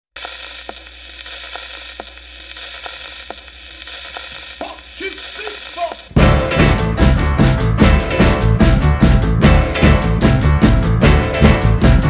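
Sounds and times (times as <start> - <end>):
hiss and static: 0.2 - 6.2.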